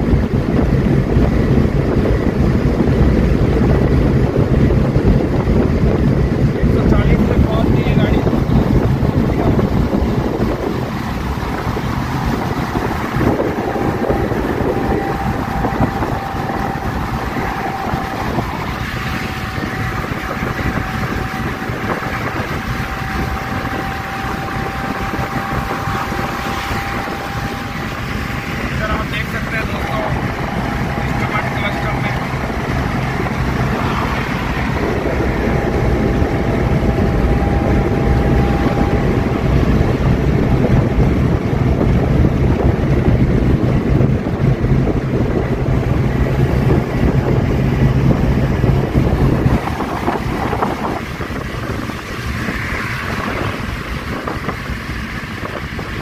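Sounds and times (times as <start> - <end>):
low drone: 0.0 - 56.0
road and wind rush: 0.0 - 56.0
van engine running: 0.0 - 56.0.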